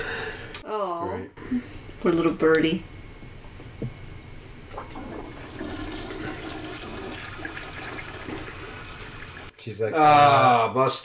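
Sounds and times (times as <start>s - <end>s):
toilet flushing: 4.7s - 9.5s.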